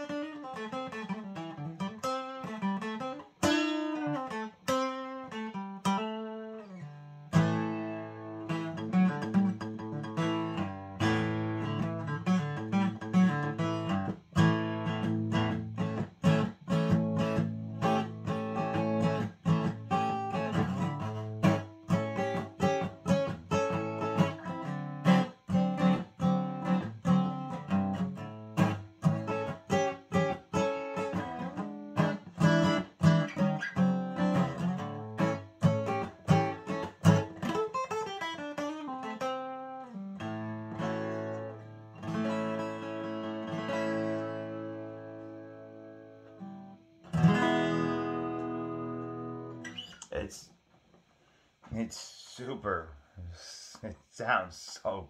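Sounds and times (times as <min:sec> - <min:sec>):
acoustic guitar strummed: 0:00.0 - 0:50.0.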